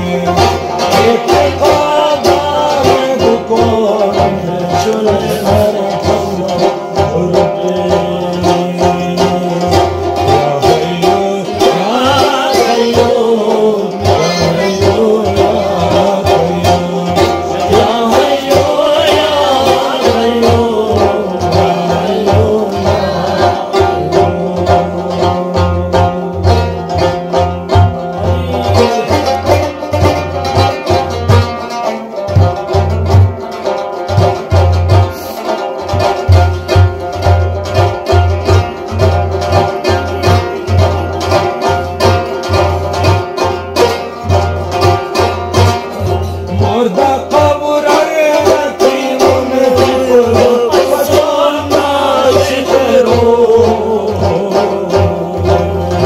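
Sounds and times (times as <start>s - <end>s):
plucked string instrument melody: 0.0s - 56.0s.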